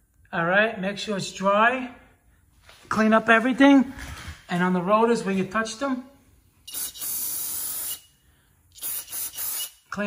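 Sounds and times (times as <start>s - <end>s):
aerosol spray hissing: 6.7s - 8.1s, 8.8s - 9.8s.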